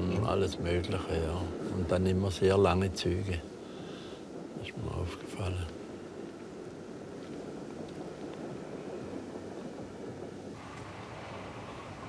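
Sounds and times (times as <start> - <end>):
bright hissing noise: 0.0 - 12.0
train wheels rumbling on rail: 0.0 - 12.0.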